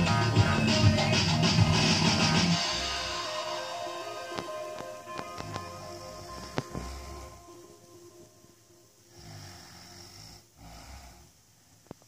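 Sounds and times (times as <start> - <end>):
person breathing: 6.0 - 7.6, 9.0 - 12.0.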